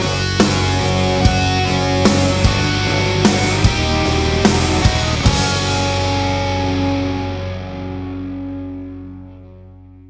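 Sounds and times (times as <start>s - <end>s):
heavy metal closing chord: 0.0s - 9.8s
guitars ringing out: 0.0s - 10.0s.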